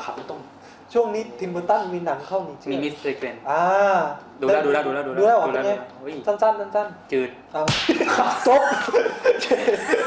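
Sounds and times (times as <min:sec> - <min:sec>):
hand slap: 0:07.7 - 0:08.1
men laughing: 0:07.9 - 0:10.0.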